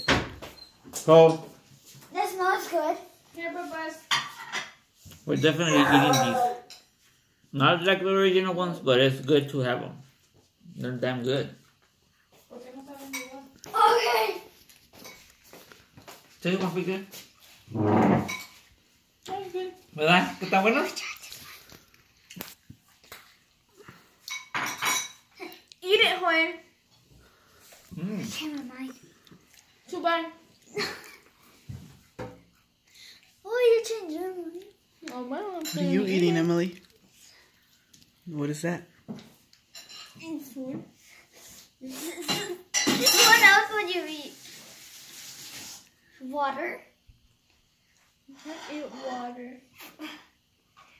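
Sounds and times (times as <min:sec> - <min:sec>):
tableware clinking on glass: 0:04.1 - 0:06.9, 0:17.8 - 0:18.6, 0:24.3 - 0:25.3, 0:42.2 - 0:43.5
child's wordless outburst: 0:05.6 - 0:06.7, 0:12.5 - 0:14.5, 0:33.4 - 0:36.0.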